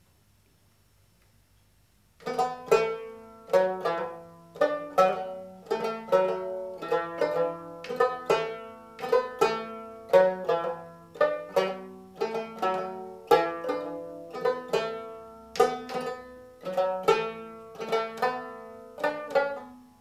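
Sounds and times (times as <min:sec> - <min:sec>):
plucked long-necked lute: 0:02.2 - 0:20.0.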